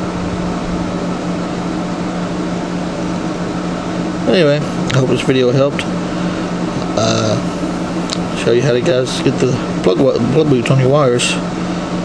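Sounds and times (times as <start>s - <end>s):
mechanical hum and hiss: 0.0s - 12.0s.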